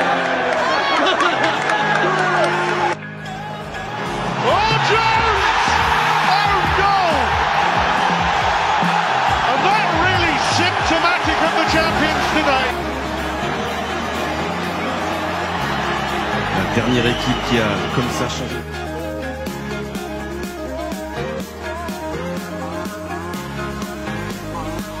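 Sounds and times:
background music: 0.0 - 25.0
crowd shouting and cheering: 0.0 - 25.0.

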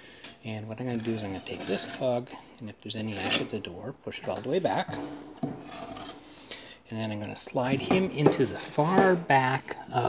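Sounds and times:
log scraping over ash and metal: 0.8 - 2.2, 5.6 - 6.4.

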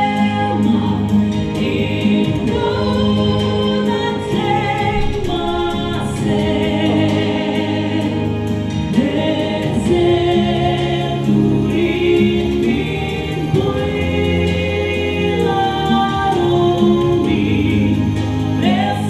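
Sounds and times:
woman singing into a microphone: 0.0 - 19.0
instrumental accompaniment: 0.5 - 19.0.

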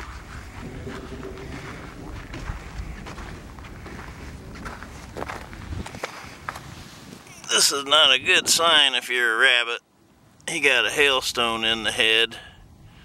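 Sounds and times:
footsteps on dirt road: 0.0 - 7.2
steady low rumble: 0.0 - 13.0.

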